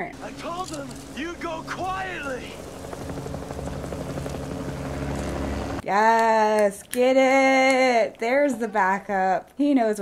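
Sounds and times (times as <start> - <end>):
low vehicle engine rumble: 0.1 - 5.8.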